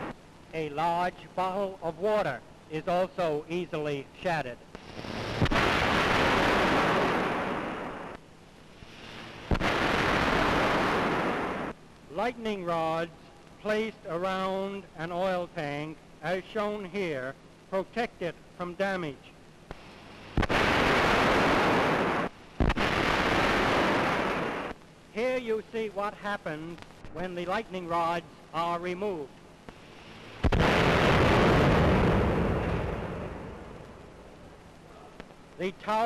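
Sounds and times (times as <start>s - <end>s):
artificial lightning cracks: 4.8s - 8.2s, 8.8s - 12.9s, 19.7s - 24.8s, 29.7s - 34.6s
loud rushing crackling noise: 4.8s - 12.1s, 19.7s - 24.8s, 29.7s - 34.8s.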